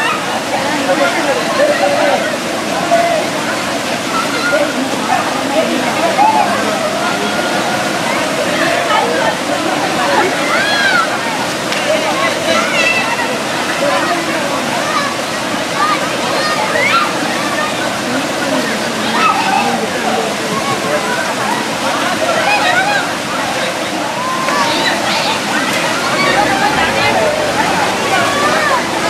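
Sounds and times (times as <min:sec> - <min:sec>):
flowing water rushing: 0:00.0 - 0:29.0
many voices talking and laughing: 0:00.0 - 0:29.0
water sloshing: 0:00.0 - 0:29.0.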